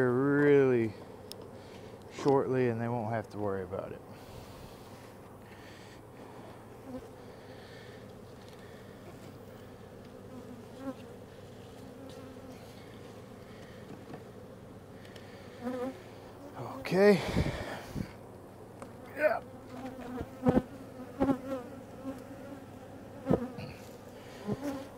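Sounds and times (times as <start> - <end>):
honeybees buzzing: 0.0 - 24.9.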